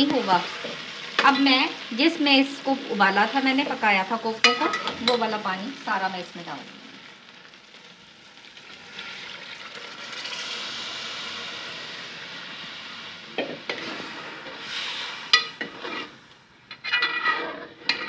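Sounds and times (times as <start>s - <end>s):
sizzling hiss: 0.0s - 18.0s
water poured into hot pot: 8.0s - 13.2s.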